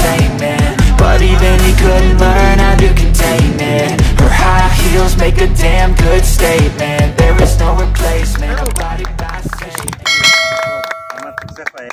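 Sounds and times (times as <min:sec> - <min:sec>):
background music: 0:00.0 - 0:11.9
bright bell chime: 0:10.1 - 0:11.6
people talking: 0:11.0 - 0:11.9.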